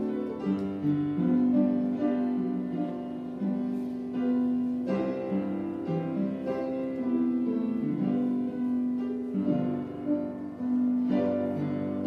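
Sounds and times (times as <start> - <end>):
slow piano hymn: 0.0 - 12.0.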